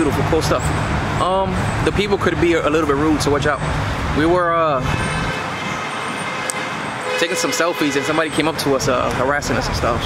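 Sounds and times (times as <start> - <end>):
street traffic rushing: 0.0 - 10.0.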